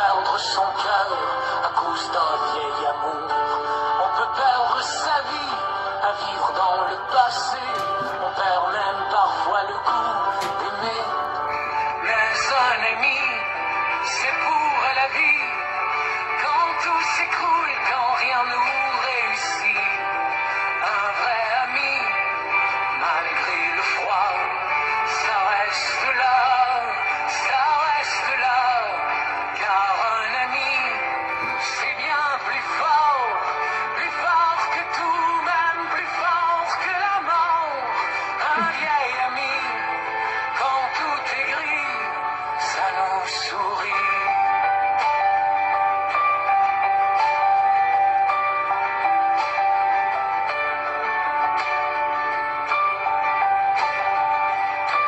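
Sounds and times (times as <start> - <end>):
person singing: 0.0 - 45.5
instrumental accompaniment: 7.3 - 12.6.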